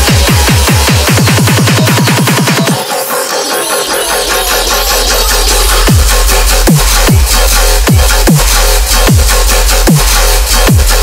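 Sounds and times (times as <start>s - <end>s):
deep steady sub-bass: 0.0s - 2.8s, 4.1s - 11.0s
noisy synth texture: 0.0s - 11.0s.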